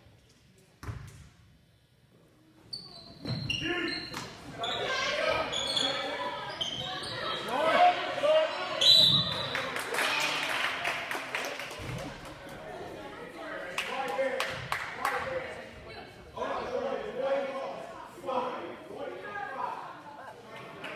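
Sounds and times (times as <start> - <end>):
sneakers squeaking: 2.6 - 7.8, 8.5 - 9.6.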